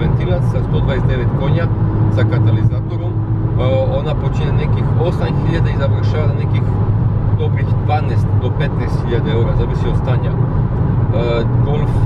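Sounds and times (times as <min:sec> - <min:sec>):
car engine droning: 0:00.0 - 0:12.0
road noise: 0:00.0 - 0:12.0.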